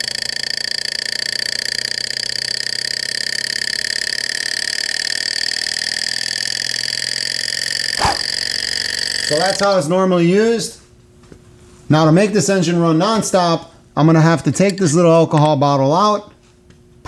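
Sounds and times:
model engine mechanical chatter: 0.0 - 9.9
steady high whine: 3.6 - 10.9.

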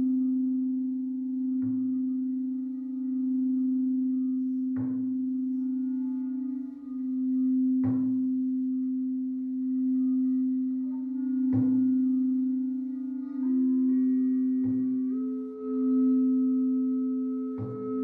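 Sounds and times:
singing bowl struck and ringing: 0.0 - 18.0.

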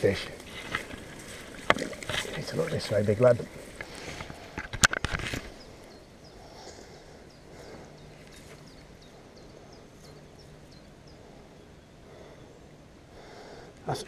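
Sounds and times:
knocks and splashes in water: 0.5 - 2.8
bird chirping faintly: 5.4 - 13.1.

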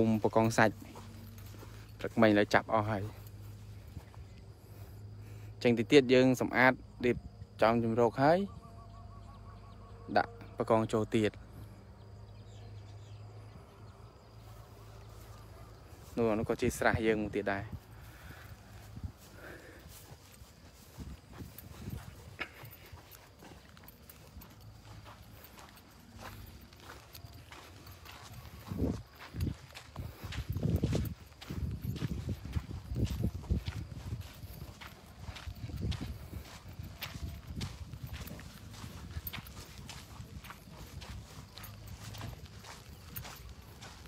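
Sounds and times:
footsteps on dirt track: 0.0 - 7.5, 10.2 - 44.0
wind buffeting microphone: 17.5 - 44.0.

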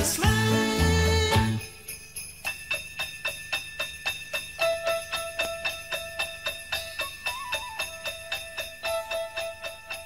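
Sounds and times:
sleigh bells shaken: 0.0 - 10.0.

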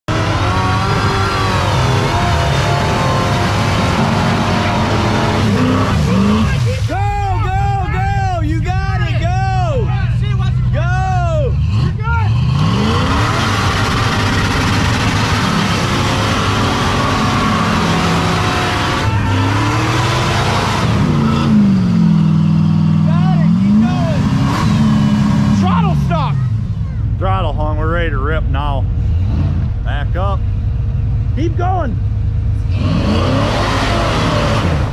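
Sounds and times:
engine revving on rev limiter: 0.1 - 6.6, 11.6 - 25.9, 32.6 - 34.9.

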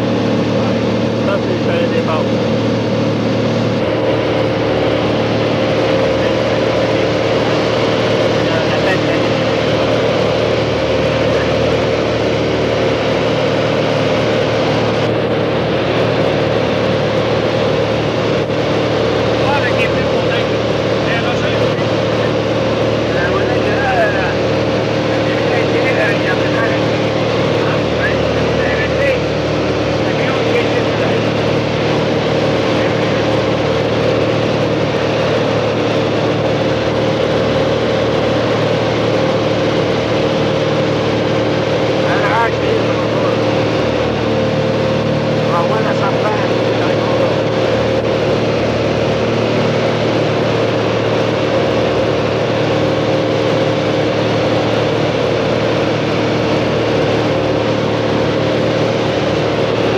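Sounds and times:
aircraft engine and propeller droning: 0.0 - 59.9.

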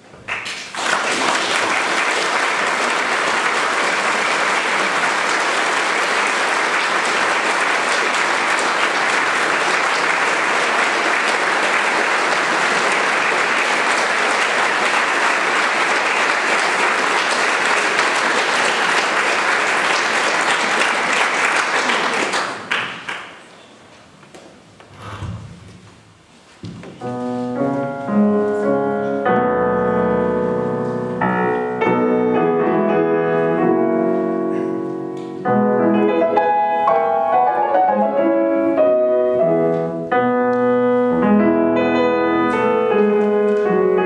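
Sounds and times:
audience applauding: 0.2 - 23.5.

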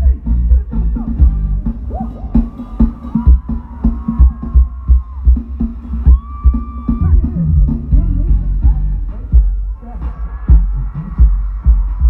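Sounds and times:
live band over sound system: 0.0 - 12.0.

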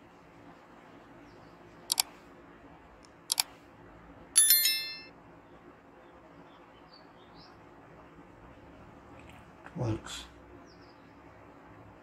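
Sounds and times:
bright bell chime: 4.4 - 5.1.

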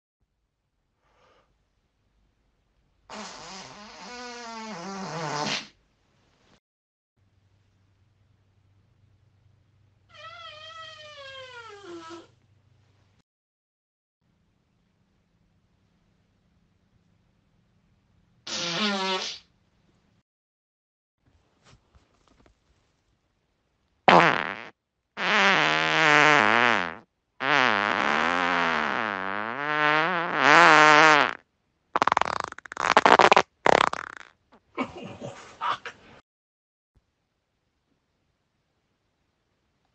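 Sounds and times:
high-pitched squeaky fart: 3.1 - 5.8, 10.1 - 12.3, 18.5 - 19.4, 24.1 - 31.4, 32.0 - 34.4.

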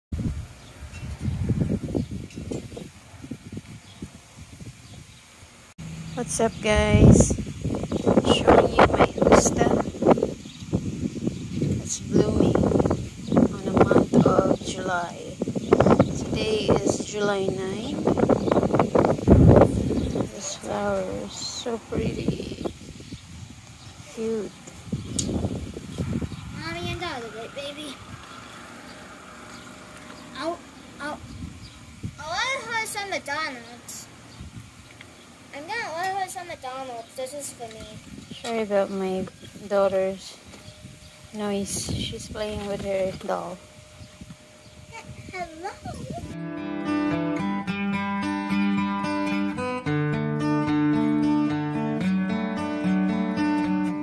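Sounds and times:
wind buffeting microphone: 0.1 - 46.4.

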